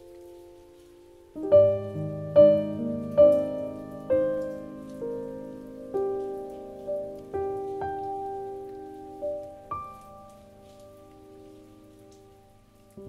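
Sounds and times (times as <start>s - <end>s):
gentle piano music: 0.0s - 13.0s.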